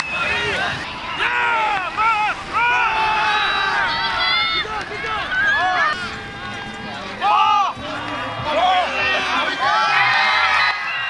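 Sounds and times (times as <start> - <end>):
voices shouting and yelling: 0.0 - 11.0
loud shout: 0.4 - 6.1, 7.2 - 7.8, 8.4 - 11.0.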